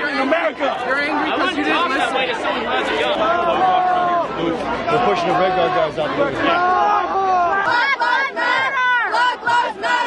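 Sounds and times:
crowd of protesters shouting: 0:00.0 - 0:10.0.

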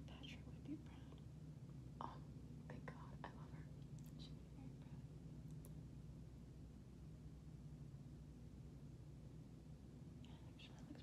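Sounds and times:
faint breathy whispering: 0:00.0 - 0:01.2, 0:02.0 - 0:05.1, 0:10.2 - 0:11.0
low steady room hum: 0:00.0 - 0:11.0.

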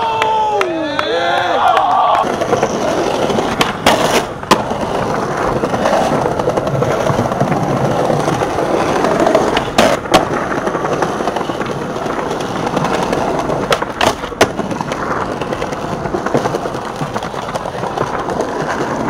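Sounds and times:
person calling out: 0:00.0 - 0:02.2
skateboard wheels rolling on pavement: 0:00.0 - 0:19.0
skateboard popping and landing: 0:01.7 - 0:19.0.

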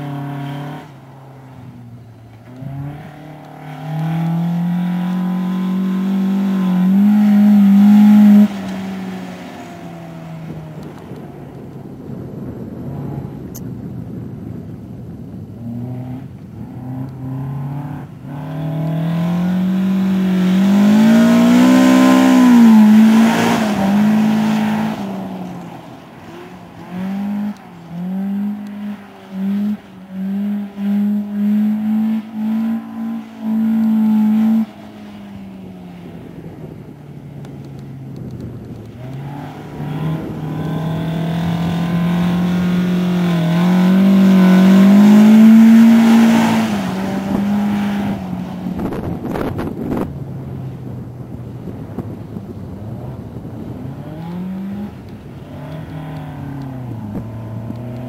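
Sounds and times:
car engine revving: 0:00.0 - 0:11.5, 0:15.4 - 0:35.6, 0:37.5 - 0:50.5, 0:53.2 - 0:58.0.

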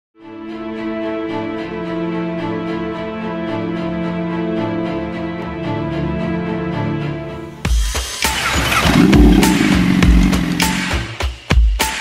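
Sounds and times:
motorcycle engine starting and idling: 0:08.0 - 0:11.2
music with heavy beat: 0:09.0 - 0:12.0.

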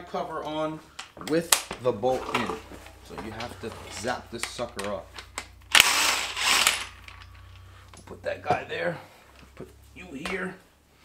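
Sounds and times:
impact wrench hammering: 0:05.7 - 0:07.2.

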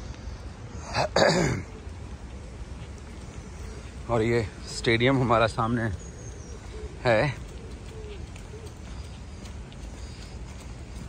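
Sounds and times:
man clearing his throat: 0:00.9 - 0:01.7.

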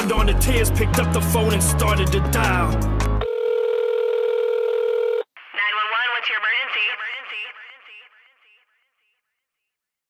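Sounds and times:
hip-hop beat: 0:00.0 - 0:03.2
telephone line tone: 0:03.2 - 0:05.3.

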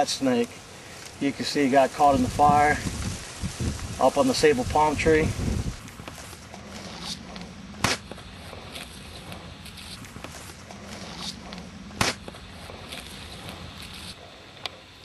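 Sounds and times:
steady low rumble: 0:01.6 - 0:14.2
loud sharp snaps: 0:07.8 - 0:08.1, 0:12.0 - 0:12.2.

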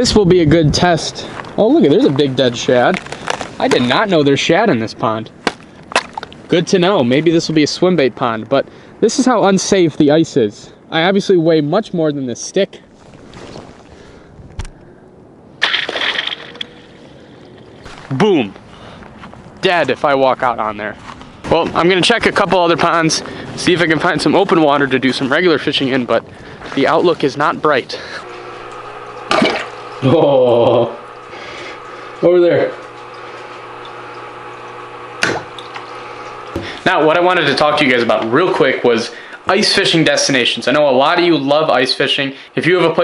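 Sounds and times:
ice crunching as it breaks: 0:01.2 - 0:04.1, 0:05.4 - 0:06.4, 0:15.6 - 0:16.8
water trickling and bubbling: 0:05.6 - 0:06.5, 0:28.3 - 0:32.2, 0:32.8 - 0:36.6
aquarium pump humming: 0:27.2 - 0:43.0.

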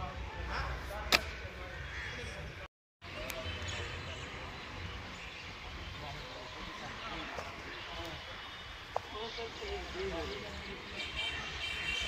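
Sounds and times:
sharp smack: 0:01.1 - 0:01.4.

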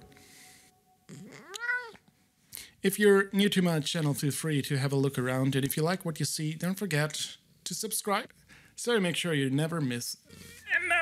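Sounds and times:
cat meowing: 0:01.1 - 0:02.0.

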